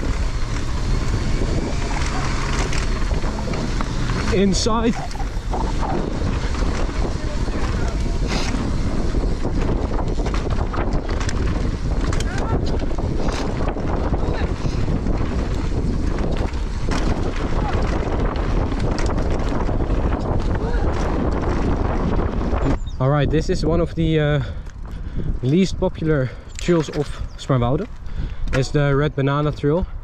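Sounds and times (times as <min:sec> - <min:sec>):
bike knocks and rattles: 0:00.0 - 0:22.8
bike tyres rolling on dirt: 0:00.0 - 0:29.8
wind rushing over microphone: 0:00.0 - 0:30.0.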